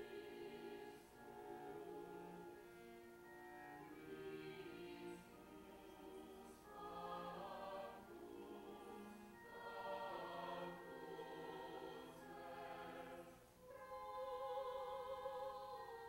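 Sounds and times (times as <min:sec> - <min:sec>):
cello: 0:00.0 - 0:16.0
choir singing: 0:00.0 - 0:16.0.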